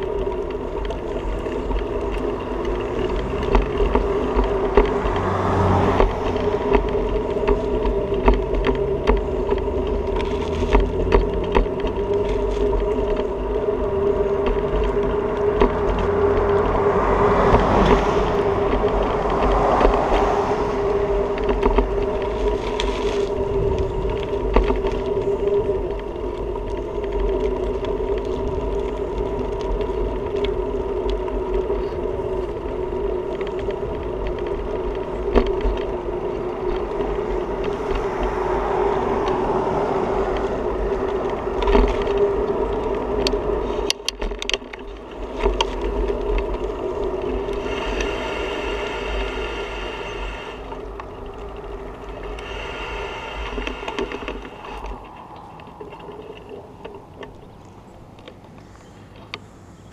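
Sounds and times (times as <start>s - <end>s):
bicycle knocking over bumps: 0.0s - 48.2s
steady droning hum: 0.0s - 59.9s
wind rumbling on microphone: 0.0s - 59.9s.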